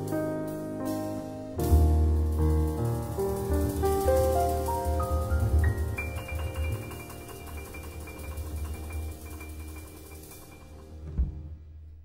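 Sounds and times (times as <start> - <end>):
mallet percussion music: 4.5 - 11.0.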